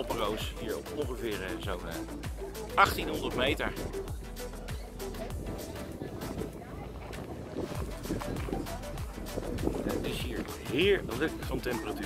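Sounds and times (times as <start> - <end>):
quiet background music: 0.0 - 12.0
wind buffeting microphone: 4.9 - 11.7.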